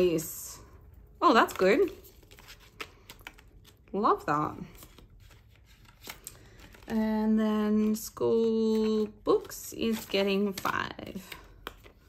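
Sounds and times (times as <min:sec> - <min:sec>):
plastic envelopes rustling: 0:01.2 - 0:12.0.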